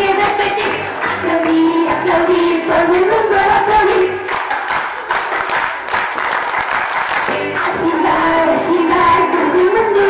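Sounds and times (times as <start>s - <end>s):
crowd clapping: 0.0s - 7.8s
music: 0.0s - 10.0s.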